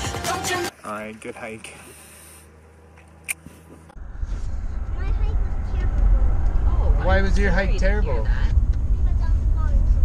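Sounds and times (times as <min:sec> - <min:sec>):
road and engine rumble in car: 0:00.7 - 0:10.0.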